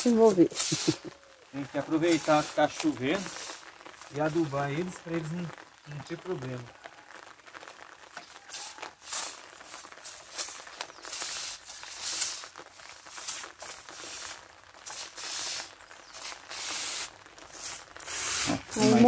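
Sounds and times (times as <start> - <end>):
sprayer nozzle hissing spurts: 13.2 - 19.0.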